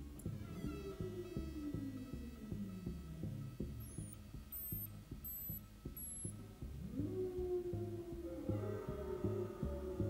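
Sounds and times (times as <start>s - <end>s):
faint synth drone: 0.0s - 10.0s.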